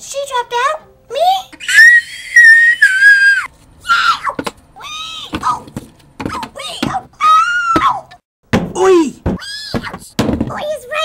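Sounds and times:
high-pitched voice shrieking: 0:01.6 - 0:05.3.

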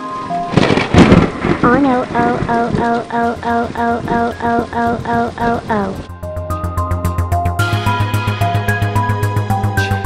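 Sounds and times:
soft music: 0:00.0 - 0:00.6, 0:03.1 - 0:10.0
rain hissing: 0:00.0 - 0:06.1
thunderclap: 0:00.2 - 0:06.1
wavering cartoon voice: 0:01.7 - 0:06.1.

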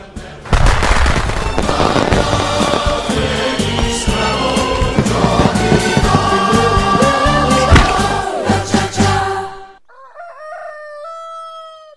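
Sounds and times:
trailer music: 0:00.0 - 0:09.6
rooster crowing: 0:09.8 - 0:11.9.

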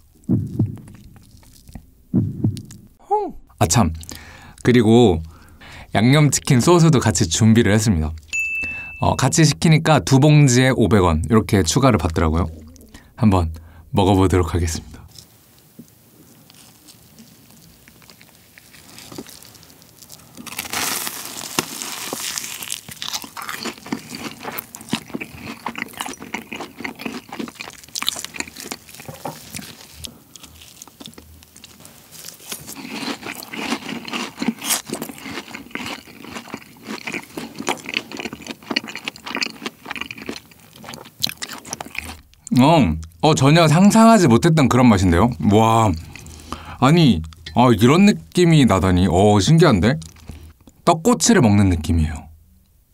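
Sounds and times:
crunchy chewing of fried food: 0:00.0 - 0:01.8, 0:15.0 - 0:43.2, 0:44.9 - 0:47.4, 0:49.8 - 0:50.8.

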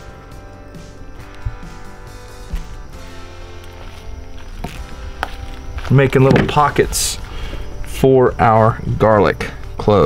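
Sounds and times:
music with sustained notes: 0:00.0 - 0:10.0.

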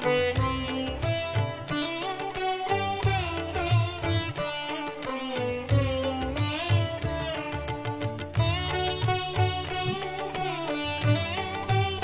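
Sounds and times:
plucked string instrument music: 0:00.0 - 0:12.0.

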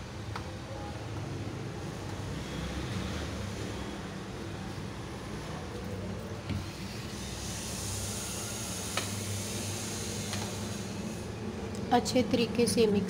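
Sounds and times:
background hum and hiss: 0:00.0 - 0:13.0.

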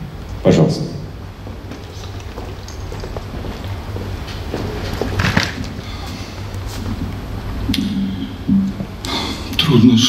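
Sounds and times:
sound system hum: 0:00.0 - 0:10.0
faint footsteps on stage boards: 0:01.1 - 0:09.0.

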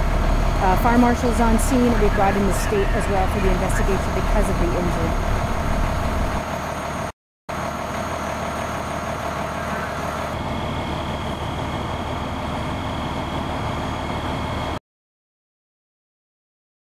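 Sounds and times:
vehicle engines idling: 0:00.0 - 0:14.8.

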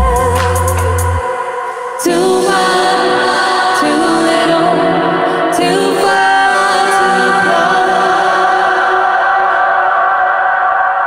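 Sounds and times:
woman singing held harmonies: 0:00.0 - 0:11.0.

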